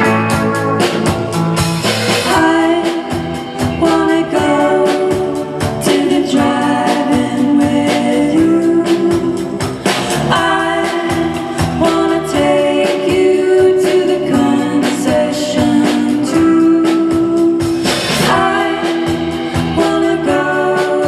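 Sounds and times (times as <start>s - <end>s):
electric bass: 0.0s - 21.0s
electric guitar: 0.0s - 21.0s
steady drum beat: 0.0s - 21.0s
person singing: 2.2s - 21.0s.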